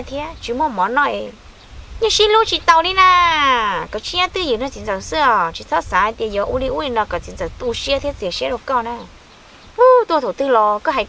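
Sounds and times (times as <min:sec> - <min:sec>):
woman talking: 0:00.0 - 0:01.4, 0:02.0 - 0:09.1, 0:09.8 - 0:11.0.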